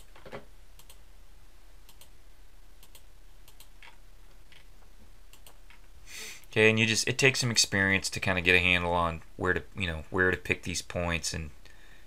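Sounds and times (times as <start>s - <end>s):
computer mouse clicks: 0.0s - 1.0s, 1.9s - 2.1s, 2.8s - 4.7s, 5.3s - 5.8s.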